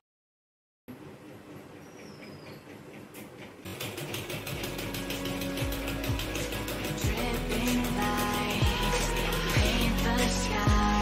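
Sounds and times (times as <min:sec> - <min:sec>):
sewing machine stitching: 0:00.9 - 0:11.0
background music: 0:03.7 - 0:11.0.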